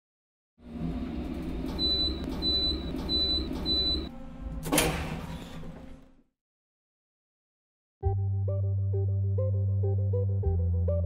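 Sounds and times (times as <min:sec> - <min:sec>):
elevator travelling rumble: 0:00.6 - 0:06.2.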